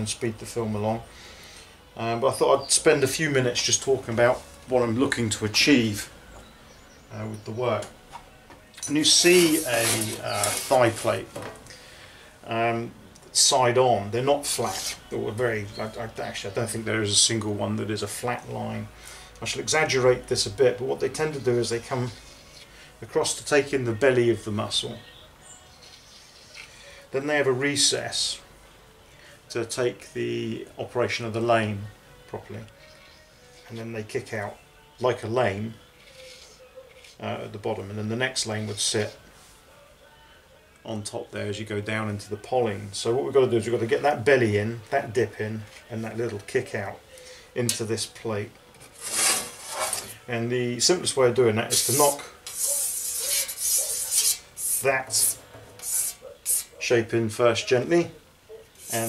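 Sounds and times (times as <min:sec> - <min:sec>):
scribe scratching steel plate: 0:09.0 - 0:11.1, 0:48.8 - 0:50.2, 0:51.6 - 0:56.8, 0:58.7 - 0:59.0.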